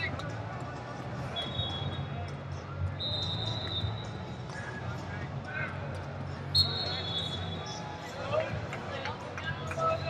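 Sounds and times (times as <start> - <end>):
low arena hum: 0.0 - 10.0.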